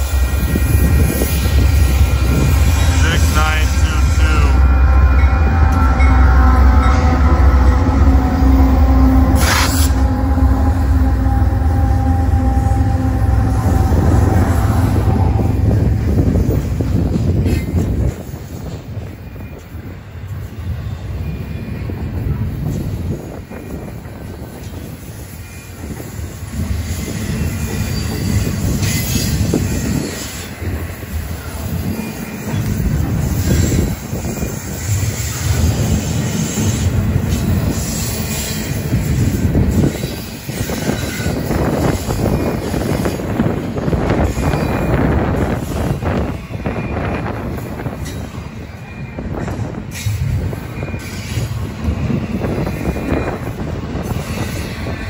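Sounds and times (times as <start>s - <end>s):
diesel locomotive engine rumble: 0.0s - 55.0s.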